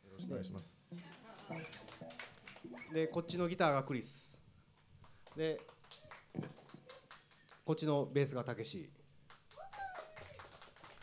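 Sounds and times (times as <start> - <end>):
hand claps: 1.0 - 3.2, 4.8 - 7.7, 9.3 - 11.0.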